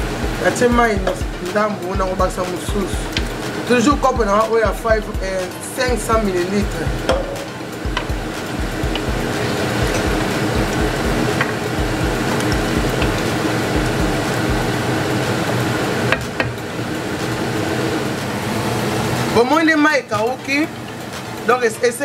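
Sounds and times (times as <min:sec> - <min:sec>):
spoon knocking against pot: 0:07.0 - 0:08.2.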